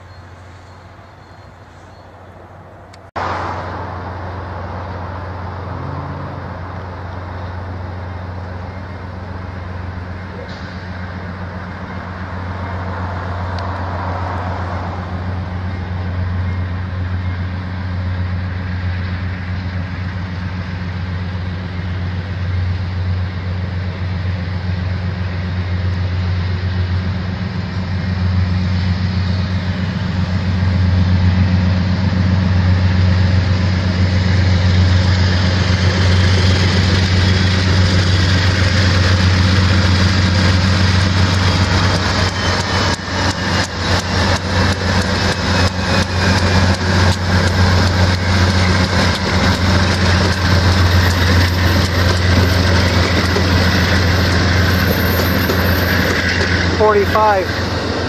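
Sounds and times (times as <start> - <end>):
diesel locomotive engines droning: 0.0 - 58.0
train wheels clacking on rails: 33.1 - 58.0.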